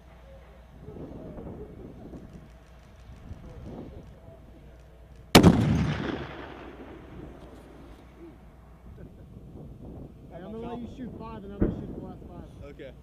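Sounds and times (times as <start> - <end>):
rifle shot echoing: 5.3 - 7.9.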